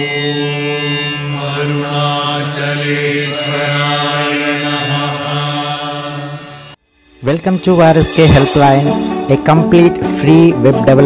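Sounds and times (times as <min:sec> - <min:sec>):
long chanted tone: 0:00.0 - 0:09.1.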